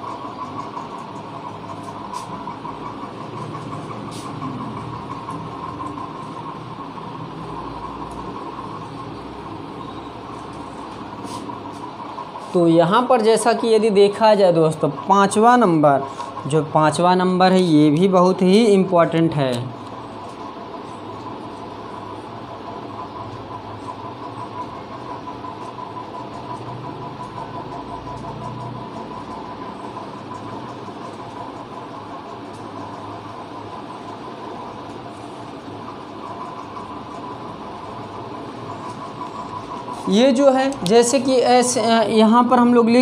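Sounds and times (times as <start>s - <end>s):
mechanical hum: 0.0s - 43.0s.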